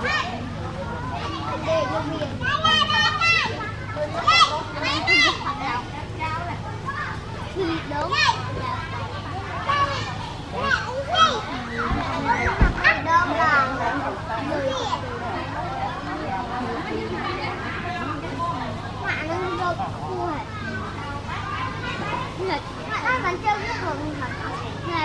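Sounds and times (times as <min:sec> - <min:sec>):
children chattering and calling out: 0:00.0 - 0:25.0
low thump: 0:11.9 - 0:12.9.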